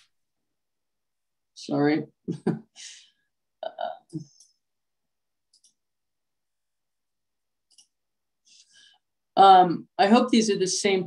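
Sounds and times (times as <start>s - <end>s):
faint clicks: 5.5s - 5.8s, 7.7s - 8.0s.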